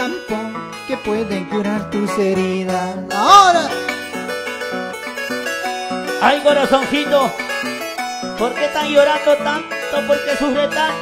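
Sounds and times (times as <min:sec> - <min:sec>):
plucked harp melody: 0:00.0 - 0:11.0.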